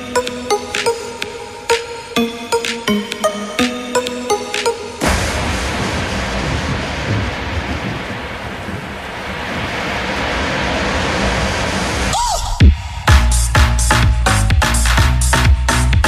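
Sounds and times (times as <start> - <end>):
noise wash with low rumble: 5.0 - 14.7.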